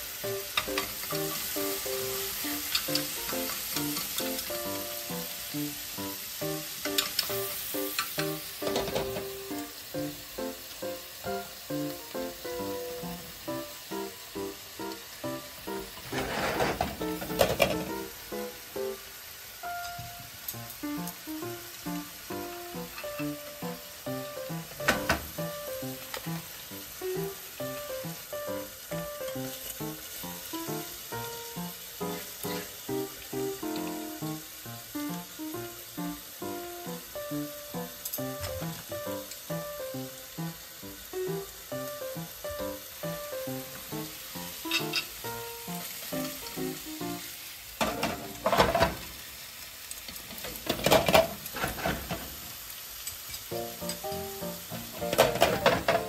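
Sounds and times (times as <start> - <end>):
sandwiches sizzling in grill pan: 0.0 - 56.0.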